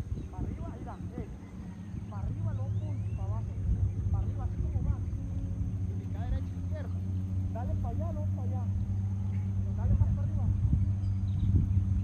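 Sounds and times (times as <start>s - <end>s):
distant voices calling out: 0.0s - 12.0s
steady low hum: 0.0s - 12.0s.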